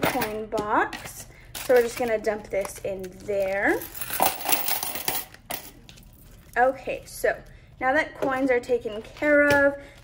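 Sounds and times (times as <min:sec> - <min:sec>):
coins pouring into box: 0:03.7 - 0:05.3.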